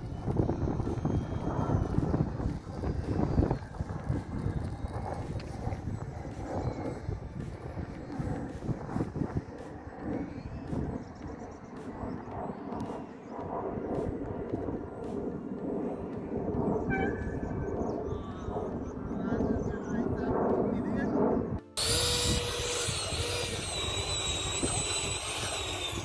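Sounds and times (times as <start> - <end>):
distant jet model rushing: 0.0 - 26.0
wind buffeting microphone: 0.0 - 26.0.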